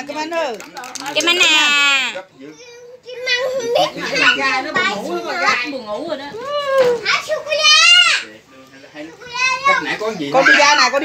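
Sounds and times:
young children chattering: 1.4 - 11.0.

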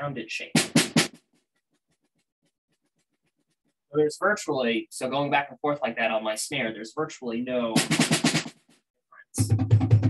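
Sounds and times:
snare drum stroke: 0.5 - 1.2.

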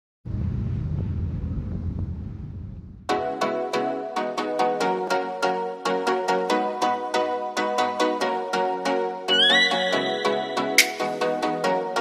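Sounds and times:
bus engine and road noise: 0.3 - 3.0.

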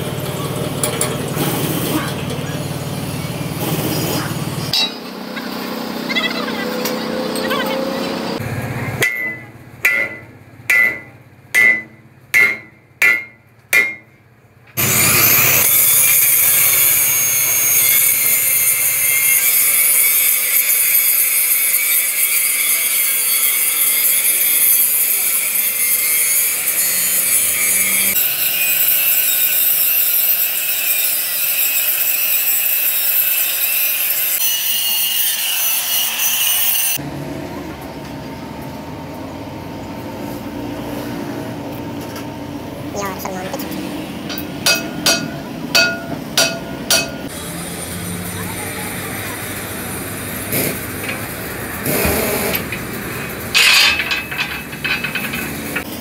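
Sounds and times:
hammer striking steel axle: 4.7 - 5.2, 9.0 - 14.9, 44.2 - 47.4, 50.5 - 56.0
angle grinder grinding: 14.8 - 37.0, 43.6 - 56.0.

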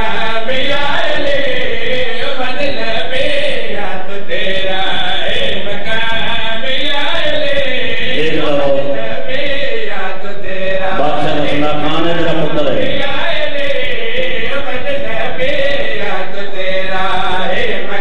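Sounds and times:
men chanting through loudspeaker: 0.0 - 18.0.

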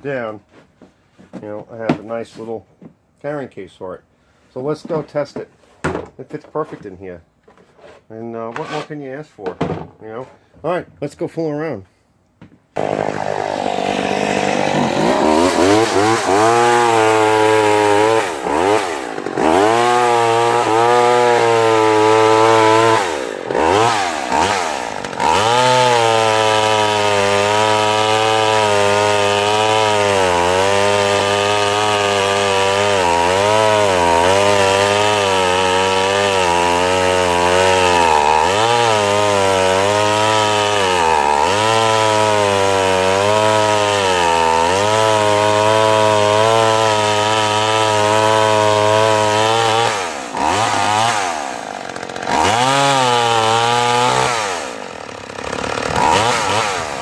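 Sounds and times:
chainsaw revving and cutting: 12.8 - 57.0.

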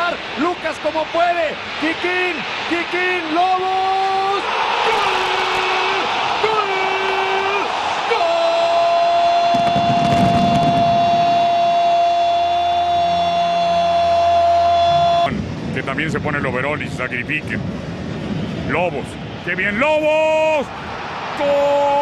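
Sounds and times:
crowd noise: 0.0 - 8.4.

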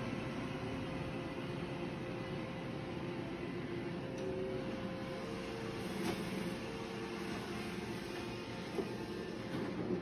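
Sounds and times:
robot vacuum running on a rug: 4.2 - 10.0.

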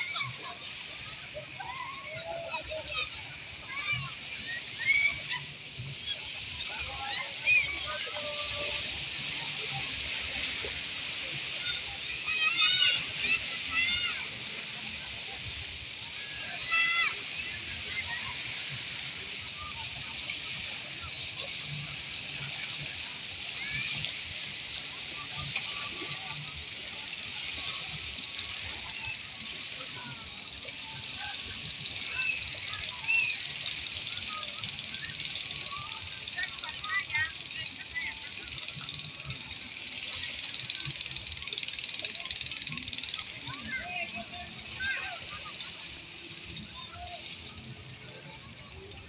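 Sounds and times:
faint indistinct voices: 0.0 - 49.0
small waves washing ashore: 0.0 - 49.0.

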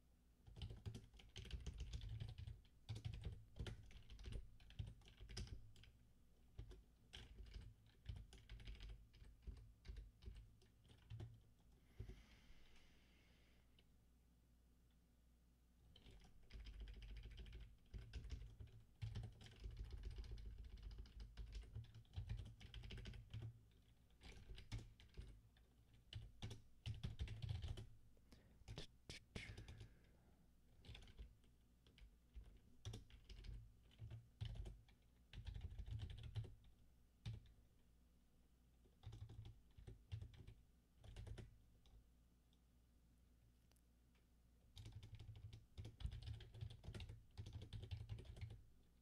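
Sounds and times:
typing on computer keyboard: 0.4 - 11.7, 15.9 - 27.9, 30.8 - 37.5, 39.0 - 42.0, 44.7 - 48.7.

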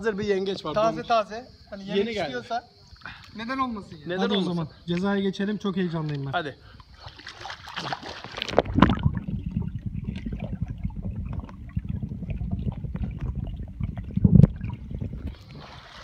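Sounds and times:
swimmer splashing: 6.9 - 9.0, 14.5 - 16.0
underwater thump: 8.2 - 16.0
underwater rumbling and bubbling: 8.3 - 16.0.

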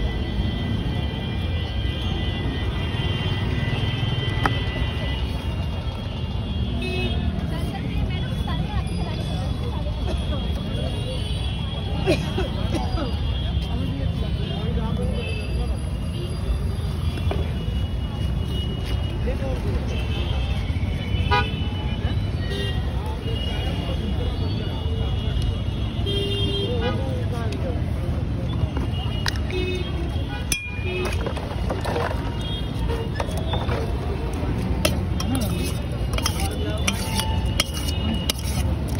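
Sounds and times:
traffic rumble: 0.0 - 38.9
steel utensils clicking: 30.5 - 32.2, 34.6 - 38.9.

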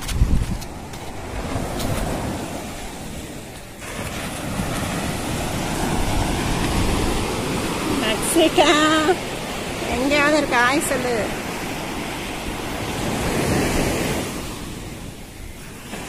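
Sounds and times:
surf washing onto beach: 0.0 - 16.0
wind buffeting microphone: 0.0 - 16.0.

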